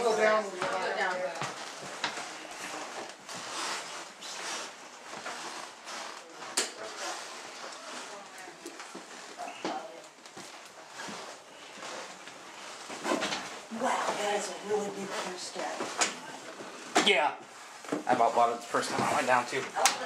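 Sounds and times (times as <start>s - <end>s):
footsteps and shuffling: 0.0s - 20.0s.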